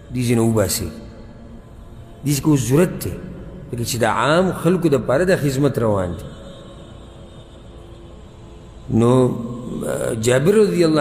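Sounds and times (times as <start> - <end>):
man chanting over microphone: 0.0 - 1.4, 2.2 - 6.7, 8.8 - 11.0.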